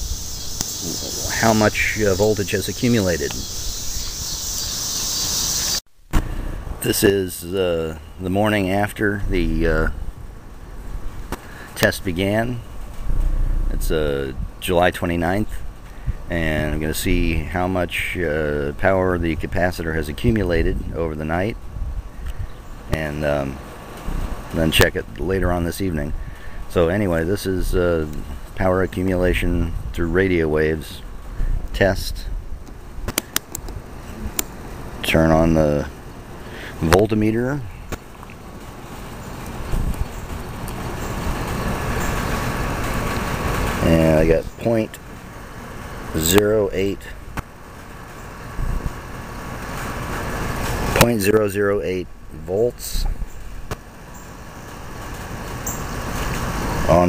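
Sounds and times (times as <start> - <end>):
crickets chirping: 0.0 - 5.8, 53.3 - 56.8
man speaking: 0.8 - 3.4, 6.8 - 10.0, 11.8 - 12.6, 13.6 - 15.6, 22.9 - 23.6, 35.0 - 35.9, 36.6 - 37.7, 43.8 - 45.0, 46.2 - 47.2, 51.0 - 53.1
low steady rumble: 5.9 - 57.0.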